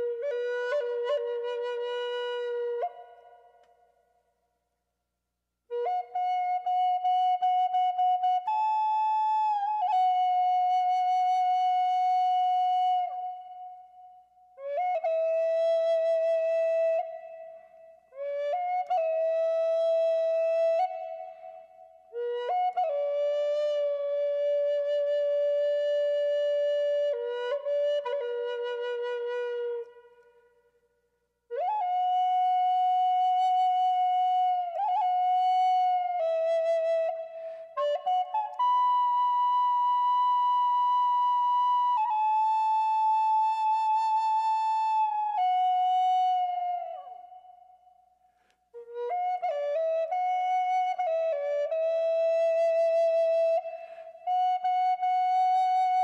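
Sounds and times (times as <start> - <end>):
wooden flute melody: 0.0 - 4.4, 5.6 - 56.0.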